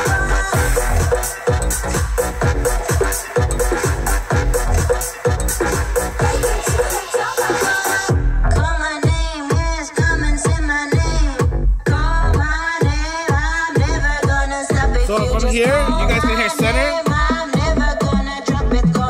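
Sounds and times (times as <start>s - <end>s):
electronic dance music: 0.0s - 19.0s.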